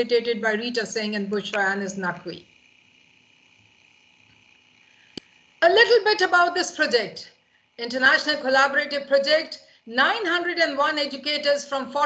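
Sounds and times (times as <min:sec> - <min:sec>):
faint high hum: 0:00.0 - 0:12.0.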